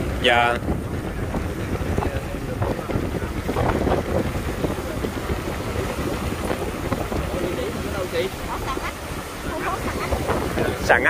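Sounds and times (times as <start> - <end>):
waves washing over rocks: 0.0 - 11.0
wind buffeting microphone: 0.0 - 11.0.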